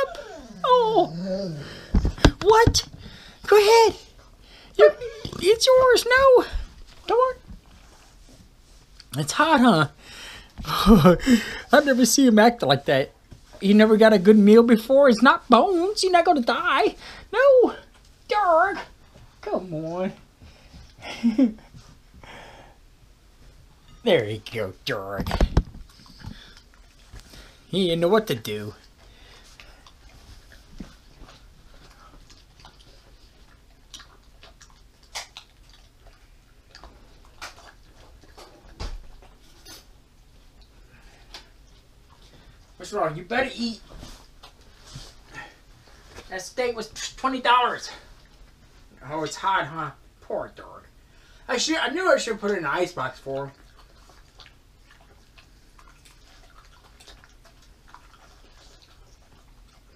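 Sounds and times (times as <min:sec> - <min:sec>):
low steady hum: 0:00.0 - 0:59.9
dog chewing and licking: 0:25.3 - 0:49.2, 0:51.6 - 0:59.9
dog eating from ceramic plate: 0:52.2 - 0:59.9.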